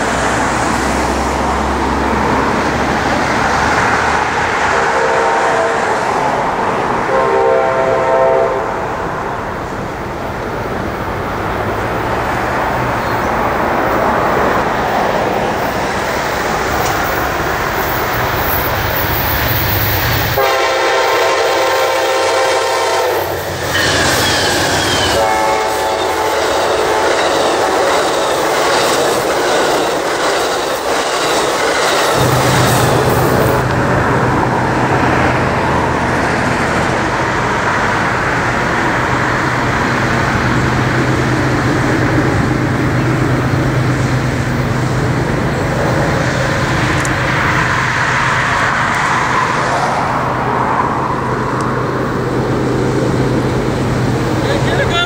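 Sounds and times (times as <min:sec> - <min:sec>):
train rumbling past: 0:00.0 - 0:55.0
diesel locomotive horn blasts: 0:04.6 - 0:06.0, 0:07.0 - 0:09.0, 0:20.4 - 0:27.4.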